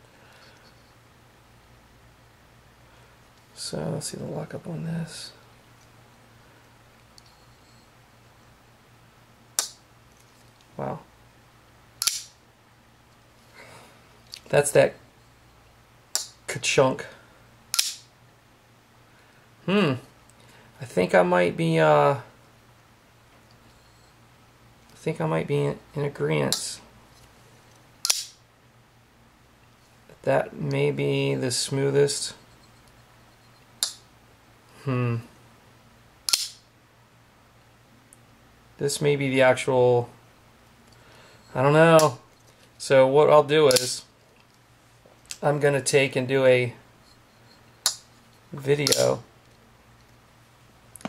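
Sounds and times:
knife blade snapping open: 12.0s - 12.3s, 17.7s - 18.0s, 28.0s - 28.4s, 36.3s - 36.6s, 48.8s - 49.1s
knife blade locking click: 48.8s - 49.1s.

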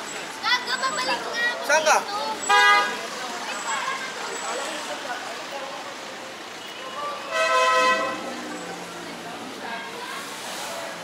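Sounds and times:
car horn honking: 2.4s - 3.0s, 6.6s - 8.3s.

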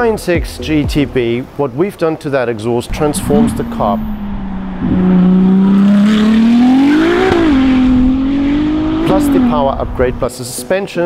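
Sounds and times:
sports car driving past: 2.9s - 10.3s.

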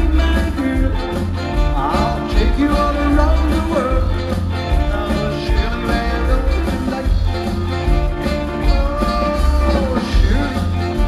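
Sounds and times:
bass beat: 0.0s - 11.0s
live rock band playing: 0.0s - 11.0s
person singing: 0.0s - 11.0s
piano: 0.0s - 11.0s.

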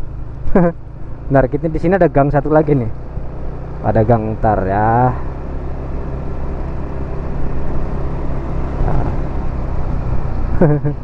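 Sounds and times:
motor scooter engine running: 0.0s - 11.0s
road noise: 0.0s - 11.0s.

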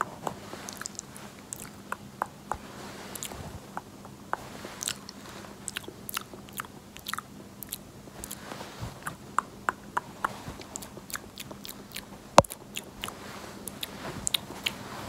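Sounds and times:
sharp crackly wet clicks: 3.2s - 8.4s.

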